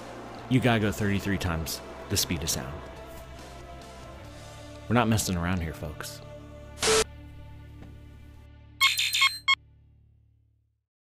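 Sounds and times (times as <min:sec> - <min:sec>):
bright electronic beeping tones: 0:08.8 - 0:09.6.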